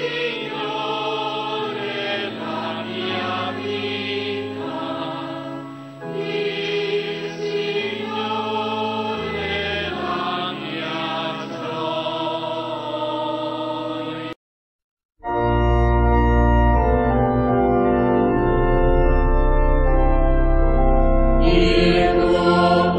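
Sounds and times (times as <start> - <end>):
sacred choral music: 0.0 - 14.4, 20.2 - 22.9.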